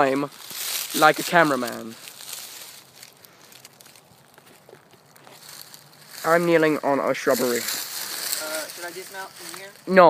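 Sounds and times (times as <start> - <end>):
faint rustling: 0.0 - 10.0.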